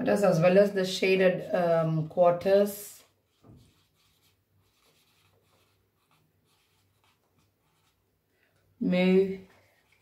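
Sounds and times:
marker pen writing on whiteboard: 0:03.0 - 0:08.0, 0:09.4 - 0:10.0.

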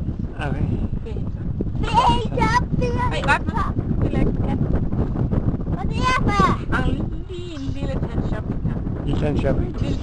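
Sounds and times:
steady low rumble: 0:00.0 - 0:10.0
woman speaking: 0:06.7 - 0:08.8.

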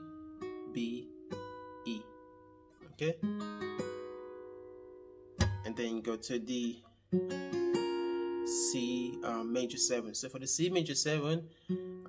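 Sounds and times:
acoustic guitar fingerpicking: 0:00.0 - 0:10.2, 0:11.5 - 0:12.0.

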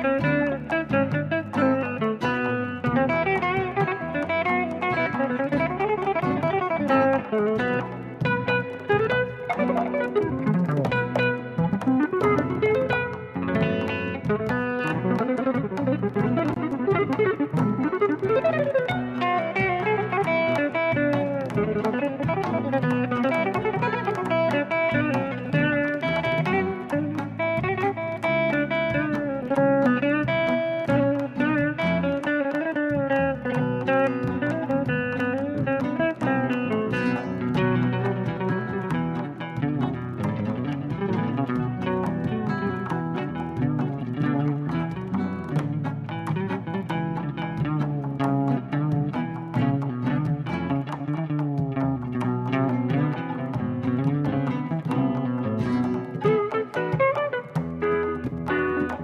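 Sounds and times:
fretless electric guitar melody: 0:00.0 - 0:59.0.

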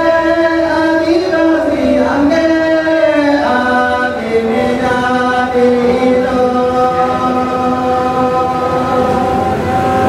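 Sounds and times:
men singing slow song: 0:00.0 - 0:09.4.

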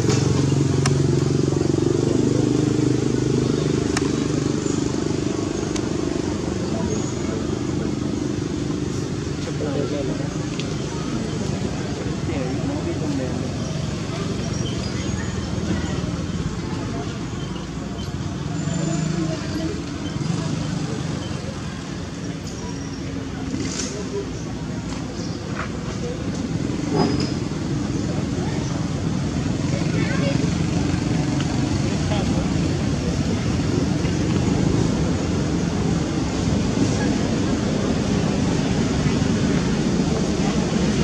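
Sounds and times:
distant voices: 0:00.0 - 0:41.0
passing road traffic: 0:00.0 - 0:41.0.

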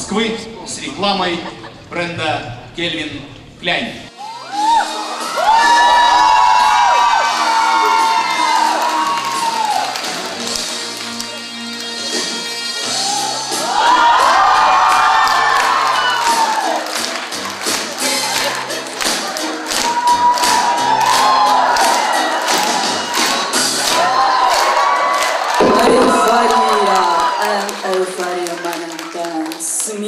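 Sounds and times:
audience cheering and shouting: 0:04.2 - 0:10.4, 0:12.8 - 0:17.0, 0:19.8 - 0:28.0.

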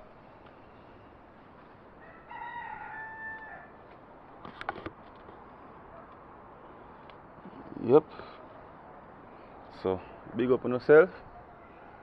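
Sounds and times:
rooster crowing: 0:02.0 - 0:03.8.

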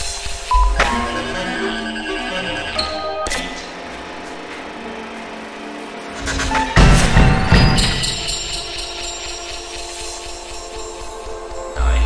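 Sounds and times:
chamber ensemble with electronics: 0:00.5 - 0:05.8.

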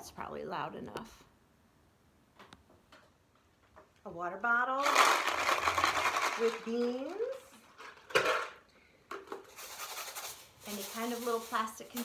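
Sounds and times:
bean-filled bottle rattling in bucket: 0:04.8 - 0:08.6, 0:09.4 - 0:12.0.

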